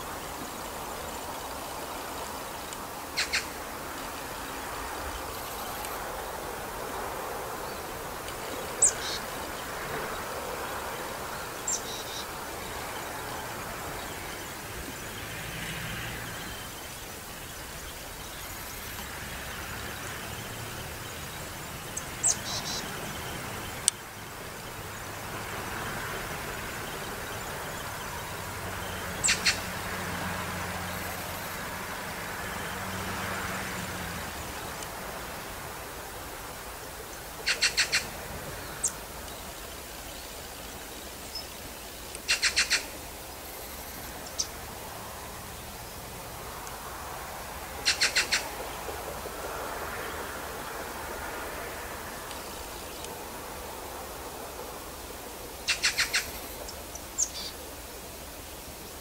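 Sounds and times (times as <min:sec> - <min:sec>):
birds chirping: 0:00.0 - 0:51.0, 0:55.5 - 0:57.8
steady background hiss: 0:00.0 - 0:59.0.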